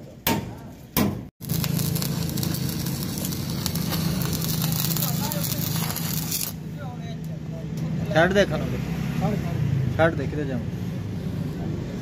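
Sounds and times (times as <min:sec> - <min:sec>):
arc welding crackling: 0:01.4 - 0:08.0.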